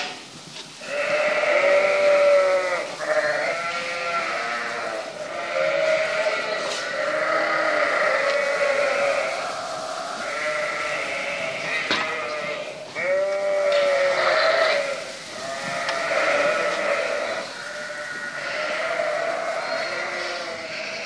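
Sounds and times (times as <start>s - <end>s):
lambs and ewes bleating: 0.8s - 21.0s.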